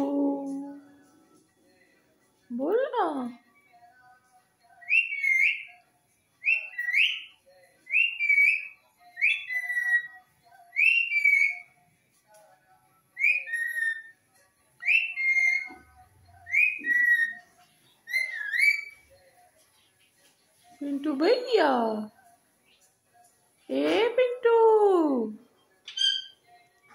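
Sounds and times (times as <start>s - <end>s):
parakeet whistling: 4.8s - 5.7s, 6.4s - 7.3s, 7.9s - 11.7s, 13.2s - 14.1s, 14.8s - 19.0s, 25.9s - 26.4s.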